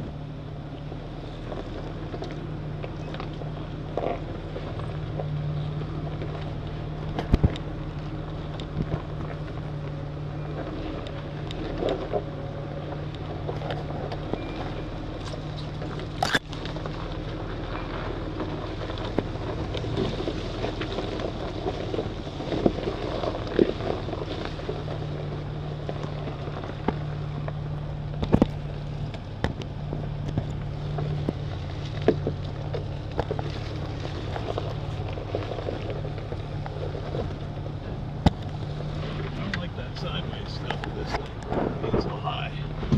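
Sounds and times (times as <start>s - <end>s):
off-road vehicle engine running: 0.0s - 42.9s
vehicle knocks and rattles: 1.4s - 42.9s.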